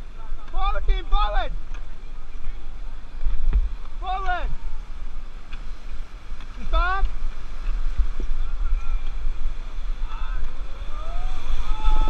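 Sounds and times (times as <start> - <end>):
wind buffeting microphone: 0.0 - 12.0
whitewater rapids rushing: 3.9 - 12.0
people yelling: 10.0 - 12.0.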